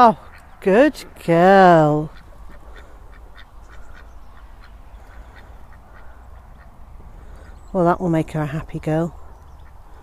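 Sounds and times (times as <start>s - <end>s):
ducks quacking quietly: 1.8s - 7.7s.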